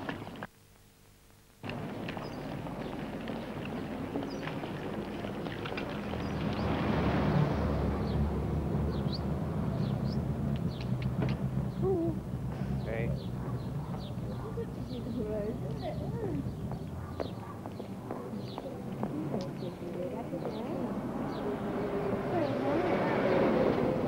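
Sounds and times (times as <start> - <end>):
low vehicle engine rumble: 1.6 - 24.0.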